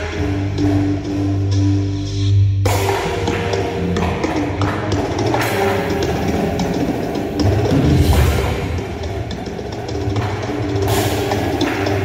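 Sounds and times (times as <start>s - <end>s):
sustained pitched tones: 5.9s - 10.6s
drum kit and bass drum hits: 7.3s - 12.0s.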